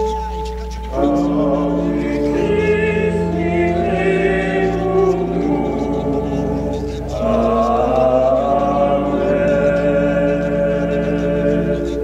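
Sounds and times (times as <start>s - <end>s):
church music held chords: 0.0s - 12.0s
steady low bass: 1.3s - 12.0s.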